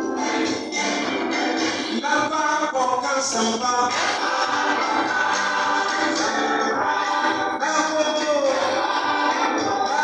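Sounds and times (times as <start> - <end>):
choir singing gospel music: 0.0 - 10.0.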